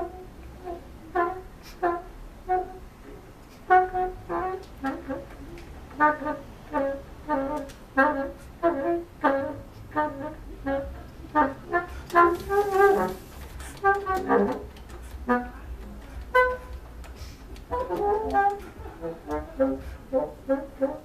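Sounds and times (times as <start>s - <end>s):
bassoon short detached notes: 10.6s - 21.0s.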